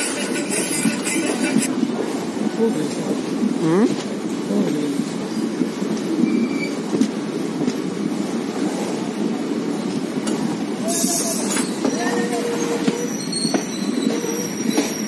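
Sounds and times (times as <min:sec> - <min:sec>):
train wheels rumbling on rails: 0:00.0 - 0:15.0
wheel squeal: 0:06.2 - 0:06.8, 0:10.8 - 0:15.0.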